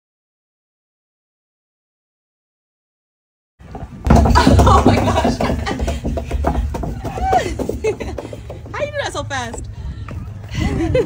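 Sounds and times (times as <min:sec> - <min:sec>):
hands knocking on corrugated metal: 0:04.0 - 0:09.6.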